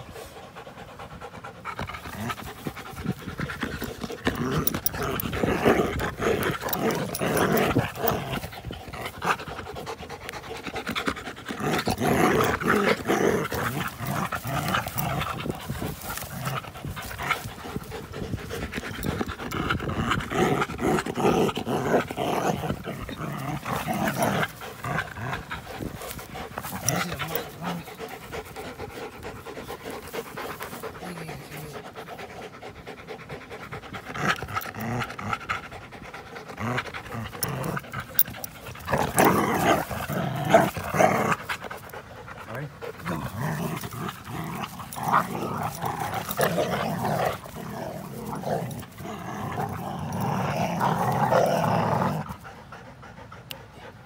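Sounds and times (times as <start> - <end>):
dogs panting: 0.0 - 54.0.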